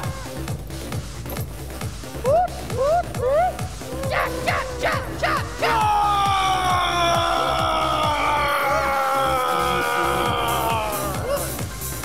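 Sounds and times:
music with steady beat: 0.0 - 8.5, 9.8 - 12.0
short falling whoops: 2.2 - 11.6.

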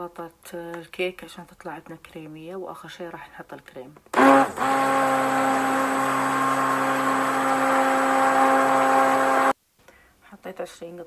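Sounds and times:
electric hand mixer running: 4.1 - 9.6.

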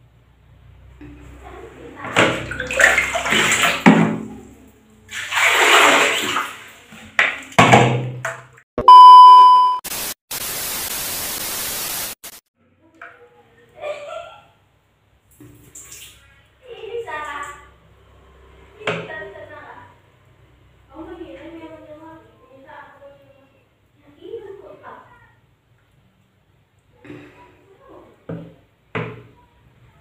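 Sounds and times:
test-tone beep: 8.8 - 9.8
tv static hiss: 9.8 - 12.4.

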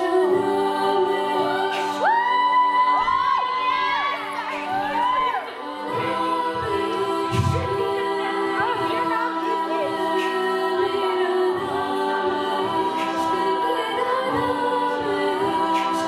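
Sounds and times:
women singing a cappella: 0.0 - 16.0.

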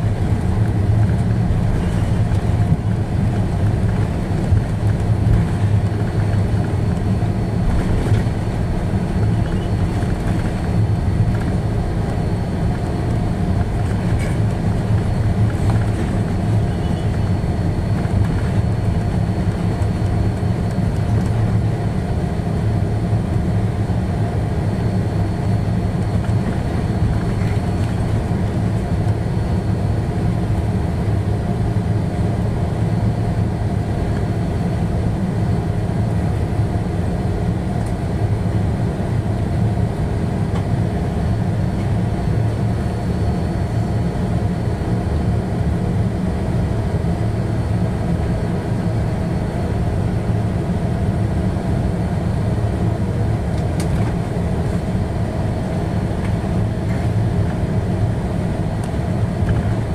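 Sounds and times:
low rumble of aircraft engines: 0.0 - 59.9.

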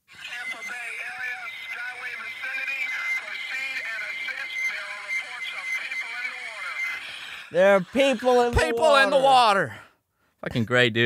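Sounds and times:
steady high whine: 0.0 - 9.9
crackly radio voice of man: 0.1 - 9.8.

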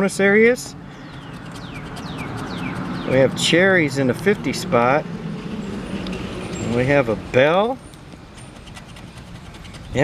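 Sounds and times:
bird chirping: 0.8 - 3.7, 5.5 - 7.0, 7.7 - 10.0
scratcher tool scraping ticket: 1.0 - 3.4, 7.9 - 10.0.

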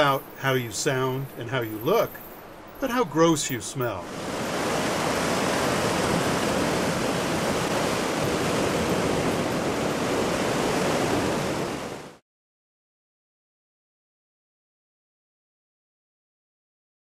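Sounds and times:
surf washing onto rocky shore: 2.8 - 12.2.

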